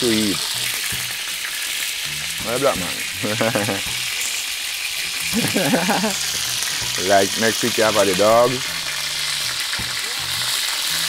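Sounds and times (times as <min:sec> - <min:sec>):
chicken sizzling in a pot: 0:00.0 - 0:11.0.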